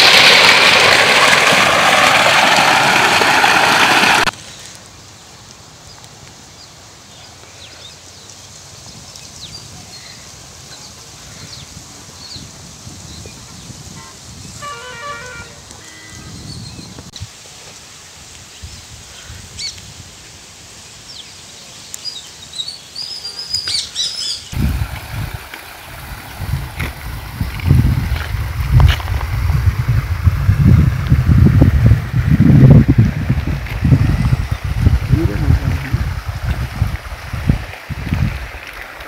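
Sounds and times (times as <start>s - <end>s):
low rumble: 32.9s - 36.8s.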